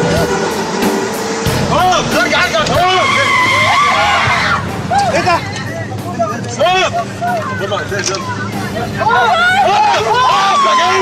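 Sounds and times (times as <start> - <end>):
music: 0.0 - 11.0
vehicle noise: 0.0 - 11.0
people shouting and screaming: 2.2 - 11.0
high cry: 2.8 - 5.4.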